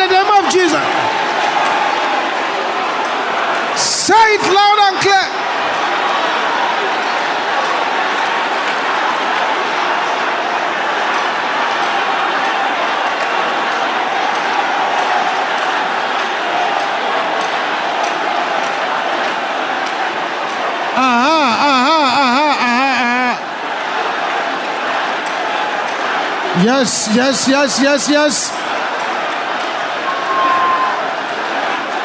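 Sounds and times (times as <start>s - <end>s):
congregation praying aloud: 0.0s - 32.0s
person crying out quavering: 21.0s - 23.4s.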